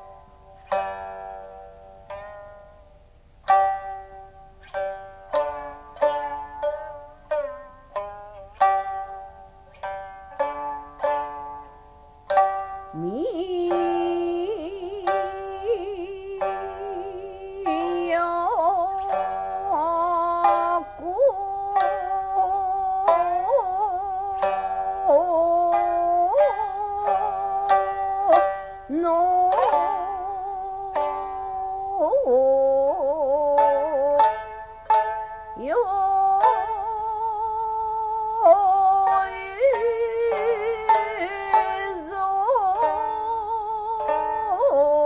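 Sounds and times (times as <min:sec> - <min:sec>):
plucked lute strokes: 0:00.0 - 0:45.0
woman singing: 0:12.8 - 0:34.4, 0:35.6 - 0:45.0.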